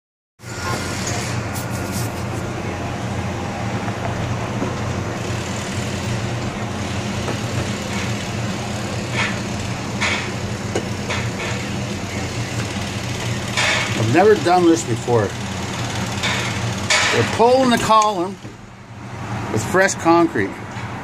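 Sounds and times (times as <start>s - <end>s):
short sharp site work noises: 0.4s - 4.0s, 4.6s - 18.6s
diesel engine running: 0.4s - 21.0s.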